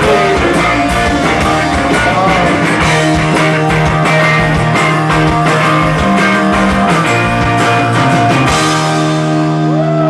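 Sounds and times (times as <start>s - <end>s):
bass guitar: 0.0s - 10.0s
electric guitars strumming: 0.0s - 10.0s
steady drum beat: 0.0s - 10.0s.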